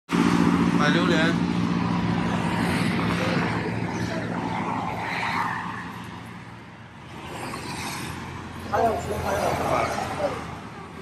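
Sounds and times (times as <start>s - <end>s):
highway traffic passing: 0.1s - 11.0s.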